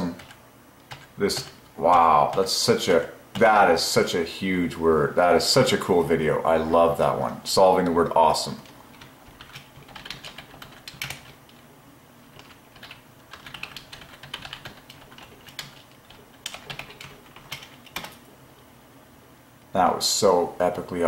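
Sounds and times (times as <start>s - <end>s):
typing on computer keyboard: 0.1s - 2.4s, 9.0s - 11.4s, 12.4s - 18.2s.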